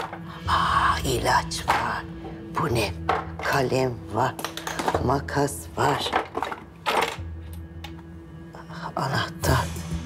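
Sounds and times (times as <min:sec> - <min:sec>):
background music drone: 0:00.0 - 0:10.0.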